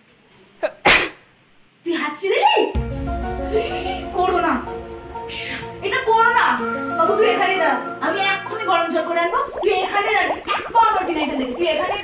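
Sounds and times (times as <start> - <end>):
person sneezing: 0.6 - 1.2.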